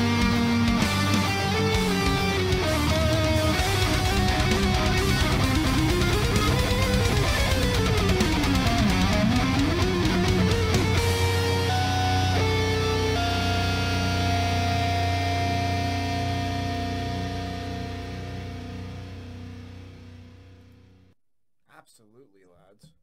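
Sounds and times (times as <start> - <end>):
heavy metal band playing: 0.0 - 19.8
ringing guitar chord: 0.0 - 20.7
picked electric guitar notes: 0.0 - 21.0.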